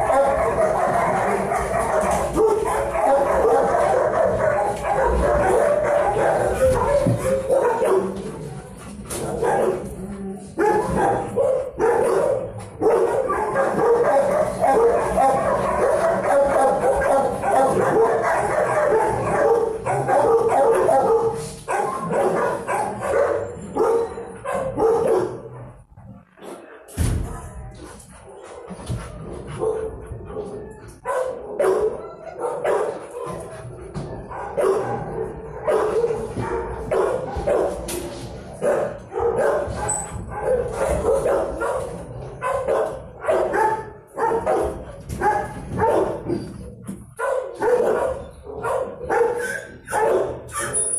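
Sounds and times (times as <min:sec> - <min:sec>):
dogs barking and yipping: 0:00.0 - 0:25.9, 0:28.2 - 0:50.9.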